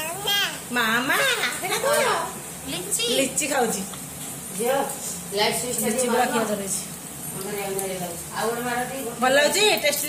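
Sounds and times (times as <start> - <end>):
young children talking: 0.0 - 0.8.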